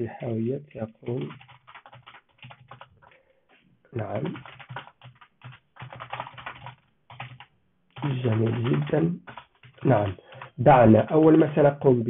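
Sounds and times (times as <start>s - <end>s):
computer keyboard typing: 0.2s - 3.2s, 4.0s - 11.7s.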